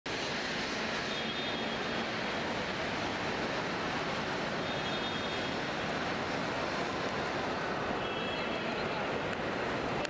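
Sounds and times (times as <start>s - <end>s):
airport terminal rushing noise: 0.1s - 10.0s.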